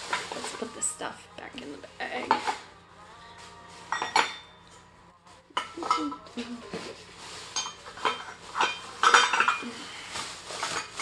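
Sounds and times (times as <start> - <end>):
small hard objects clinking: 7.4 - 11.0.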